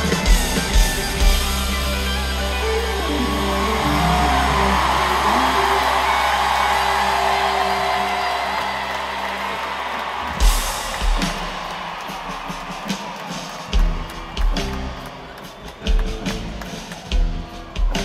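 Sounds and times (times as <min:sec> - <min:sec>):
audience cheering and whooping: 0:00.0 - 0:17.2
live band music: 0:00.0 - 0:18.0.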